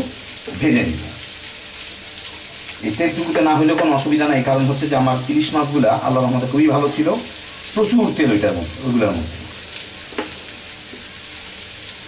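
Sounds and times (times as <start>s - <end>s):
onions sizzling in hot oil: 0.0s - 12.0s.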